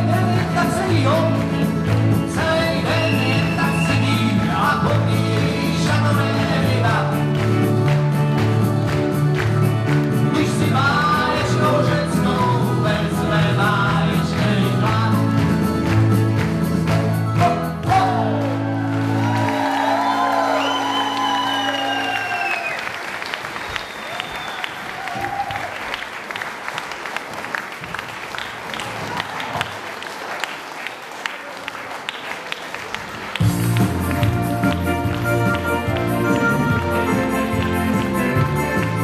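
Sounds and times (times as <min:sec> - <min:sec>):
audience applauding: 0:00.0 - 0:11.6, 0:14.3 - 0:39.0
music playing: 0:00.0 - 0:22.7, 0:33.4 - 0:39.0.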